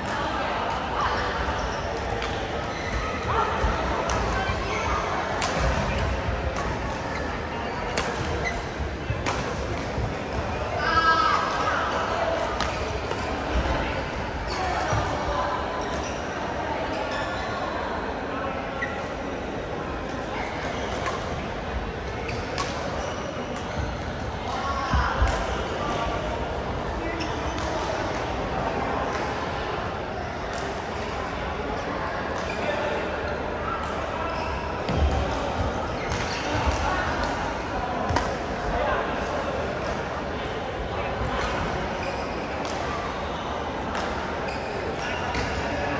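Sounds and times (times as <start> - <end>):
echoing voices and chatter: 0.0 - 45.9
racket hitting shuttlecock: 5.4 - 7.2, 7.9 - 8.6, 9.2 - 10.1, 38.1 - 38.4.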